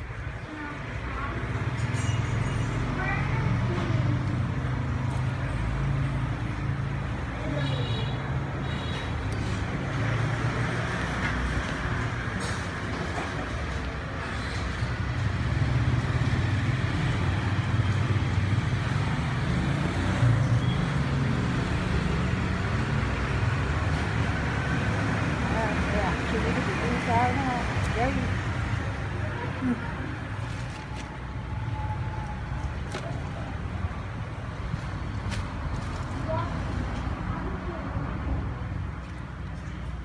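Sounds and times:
road traffic: 0.0s - 40.0s.

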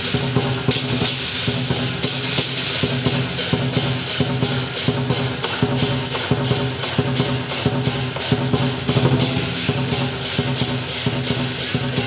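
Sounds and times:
cymbal clashes: 0.0s - 12.0s
large drum beating: 0.0s - 12.0s.

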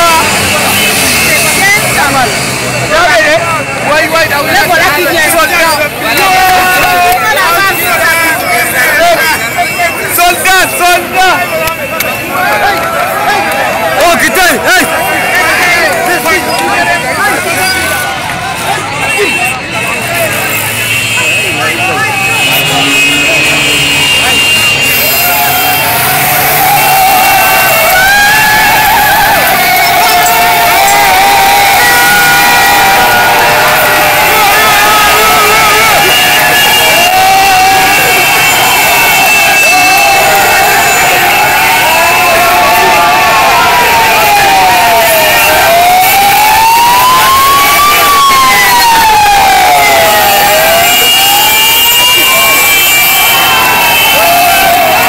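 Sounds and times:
crowd cheering and shouting: 0.0s - 55.0s
vehicles driving past: 0.0s - 55.0s
siren wailing: 21.8s - 55.0s.

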